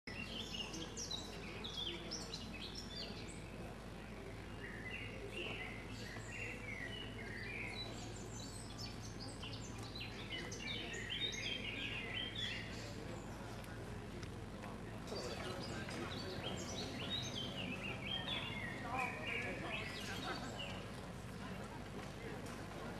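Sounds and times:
birds chirping and singing: 0:00.1 - 0:13.6, 0:14.8 - 0:20.8.

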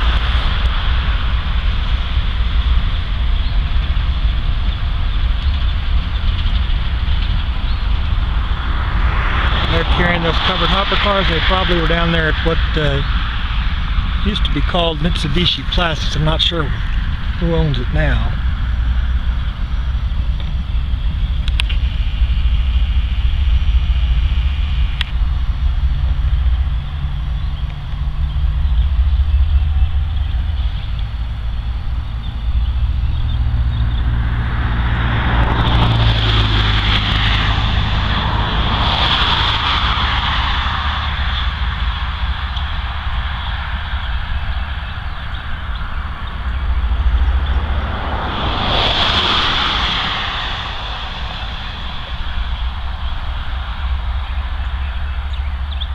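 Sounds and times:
freight train rumbling past: 0:00.0 - 0:55.9.

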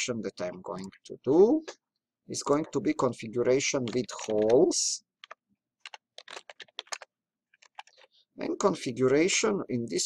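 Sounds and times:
typing on computer keyboard: 0:03.8 - 0:04.6, 0:05.2 - 0:08.1.

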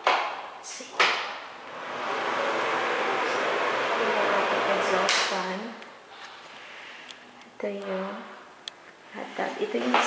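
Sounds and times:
exhaust fan whirring: 0:01.3 - 0:09.9.

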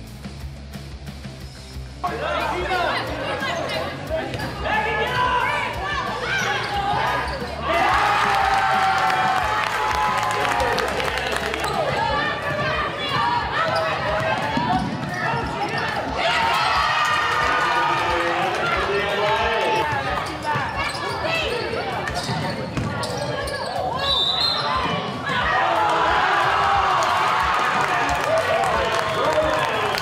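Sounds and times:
sneakers squeaking: 0:03.2 - 0:04.6, 0:05.2 - 0:07.7, 0:11.2 - 0:17.2, 0:18.5 - 0:25.6
basketball bouncing on hardwood floor: 0:22.1 - 0:23.1.

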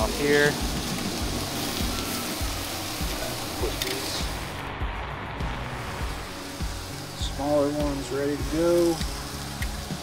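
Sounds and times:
meat searing on griddle: 0:00.0 - 0:04.7, 0:05.4 - 0:10.0
background music with beat: 0:00.0 - 0:10.0.

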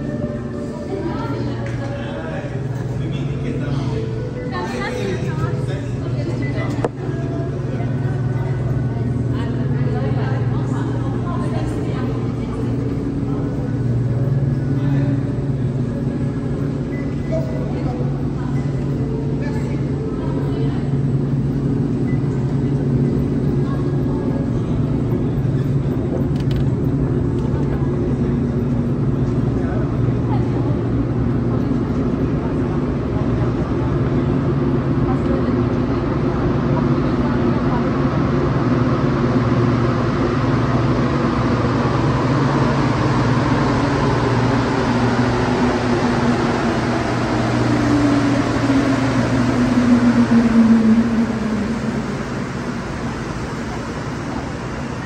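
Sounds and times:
escalator machinery hum: 0:00.0 - 0:55.0
metro train approaching: 0:00.0 - 0:55.0.

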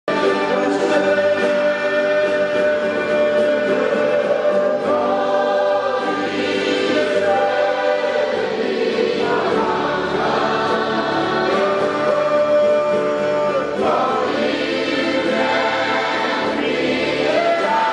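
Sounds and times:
group singing gospel song: 0:00.1 - 0:17.9
lead voice on microphone: 0:00.1 - 0:17.9.

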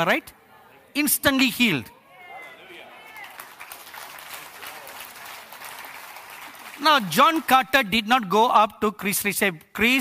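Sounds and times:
faint voices responding: 0:01.9 - 0:03.5
congregation applauding: 0:02.4 - 0:07.9.

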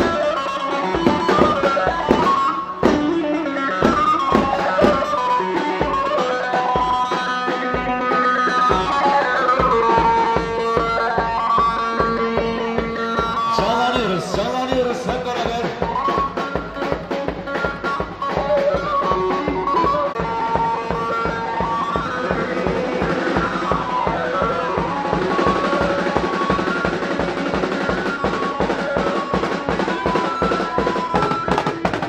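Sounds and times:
drum kit strokes: 0:00.0 - 0:32.0
live band music: 0:00.0 - 0:32.0
drum kit fast dance beat: 0:11.5 - 0:19.4.

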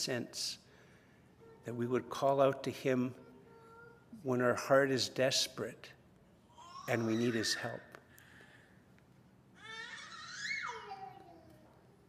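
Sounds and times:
small child squealing: 0:06.5 - 0:07.9, 0:09.6 - 0:11.4.

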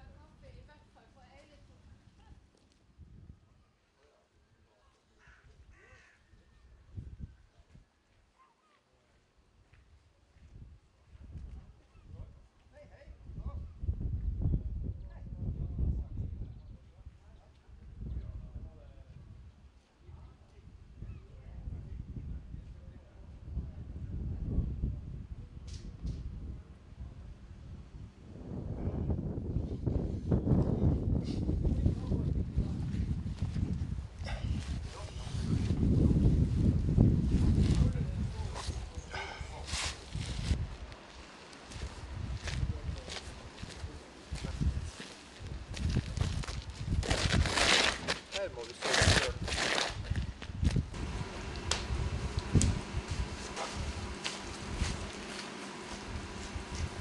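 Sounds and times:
crow-like caws: 0:05.2 - 0:06.3
wind buffeting microphone: 0:06.7 - 0:07.9, 0:13.1 - 0:40.9, 0:41.7 - 0:48.2, 0:49.0 - 0:57.0
low rumble: 0:50.6 - 0:55.3.

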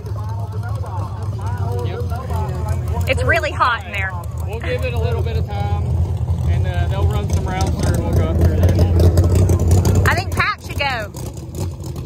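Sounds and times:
people talking: 0:00.0 - 0:11.1
low rumble: 0:00.0 - 0:12.0.

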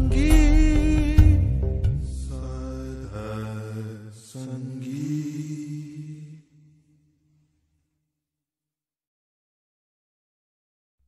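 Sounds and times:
devotional hymn singing: 0:00.0 - 0:06.6.

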